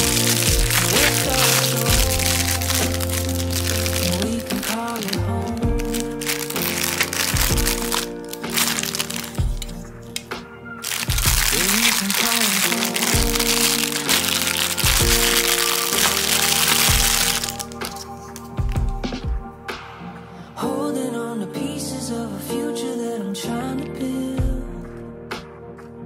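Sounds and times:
background song with singing: 0.0 - 7.8, 17.5 - 25.4
plastic packaging crinkling: 0.0 - 18.7.

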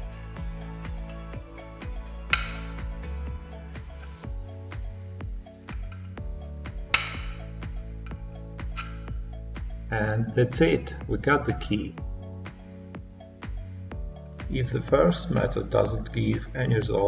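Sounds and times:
background music with steady beat: 0.0 - 17.0
magnet snapping against metal: 2.3 - 2.7, 6.9 - 7.4, 8.7 - 9.1.

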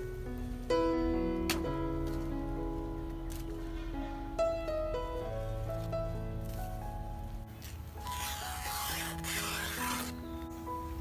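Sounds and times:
background music of held notes: 0.0 - 11.0
leaf rustling: 0.0 - 11.0.

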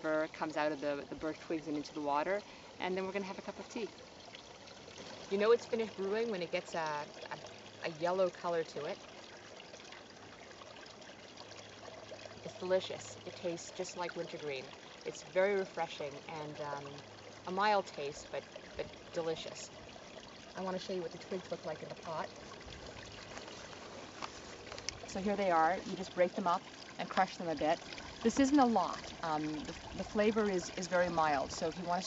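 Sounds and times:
creek water flowing: 0.0 - 32.0
faint background hiss: 0.0 - 32.0.

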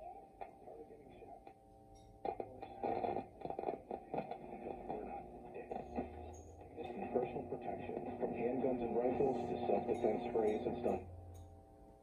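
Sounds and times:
radio crackles: 0.0 - 1.6, 2.2 - 11.1
muffled radio voices and music: 0.0 - 11.3.

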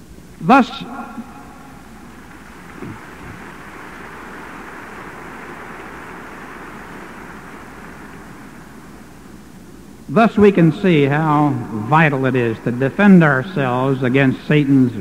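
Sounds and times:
cassette tape hiss and hum: 0.0 - 15.0.

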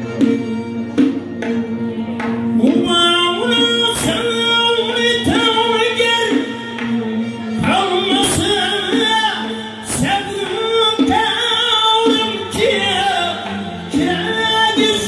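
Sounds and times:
man singing into microphone: 2.6 - 15.0.

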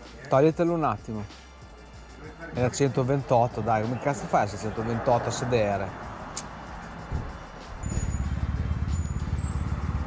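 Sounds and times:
vehicle engine running: 4.3 - 10.0.

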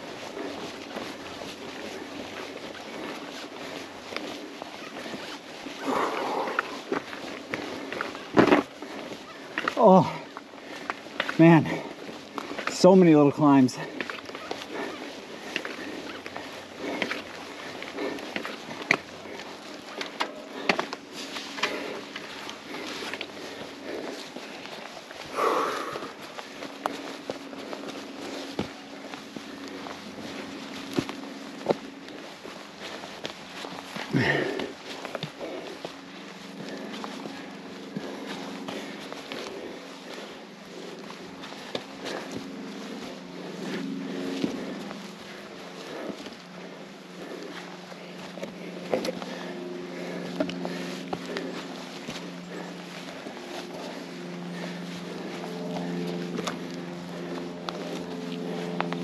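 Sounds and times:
footsteps on dirt trail: 0.0 - 59.0
low steady hum: 0.0 - 59.0
person breathing or grunting: 5.8 - 6.8, 25.3 - 26.2, 34.1 - 34.8
bike clicking and knocking: 6.6 - 12.8, 14.0 - 24.8.

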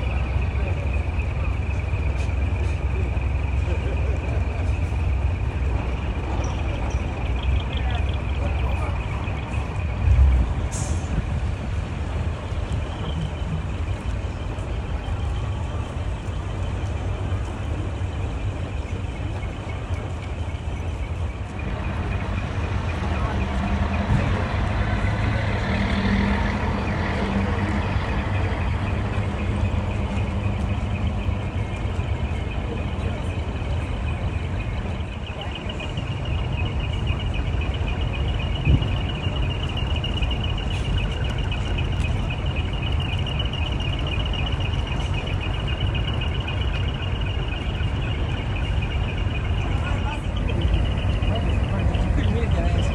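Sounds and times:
diesel trucks manoeuvring: 0.0 - 52.9.

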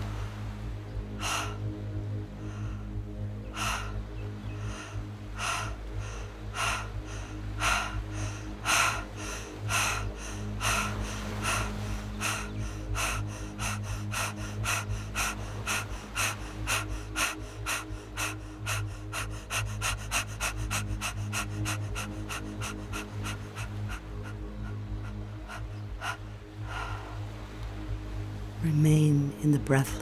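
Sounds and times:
woman breathing fast: 1.2 - 27.4.

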